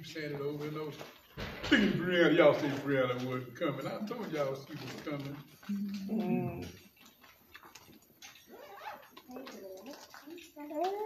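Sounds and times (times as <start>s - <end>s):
faint small clicks and rustles: 0.2s - 11.0s.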